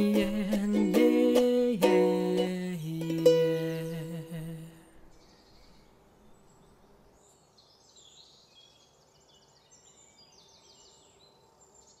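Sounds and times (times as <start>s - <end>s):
birds chirping and trilling: 5.0s - 12.0s.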